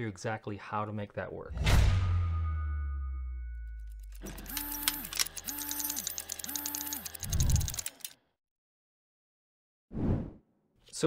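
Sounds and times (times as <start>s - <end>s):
low thud: 1.5s - 2.6s
fast ratcheting clicks: 4.1s - 8.2s
motor whirs: 4.2s - 8.2s.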